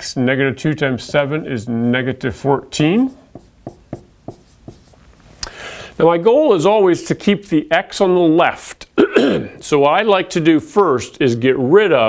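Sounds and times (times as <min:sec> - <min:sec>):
marker writing on whiteboard: 0:02.7 - 0:05.0.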